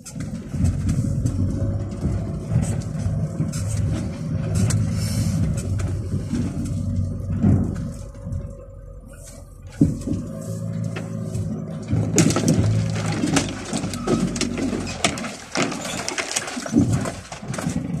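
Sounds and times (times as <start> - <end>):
vehicle engine running: 0.0 - 18.0
vehicle knocking and rattling: 0.0 - 18.0.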